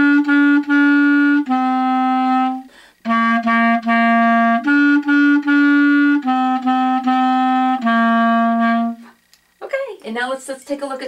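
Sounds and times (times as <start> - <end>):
clarinet playing simple tune: 0.0 - 9.2.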